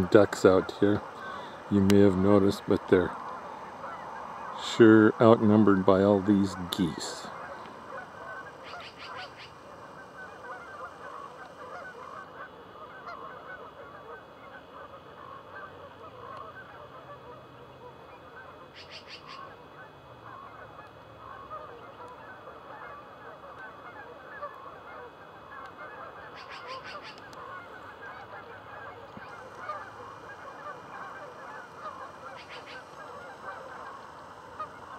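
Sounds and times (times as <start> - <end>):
geese honking: 0.0 - 34.9.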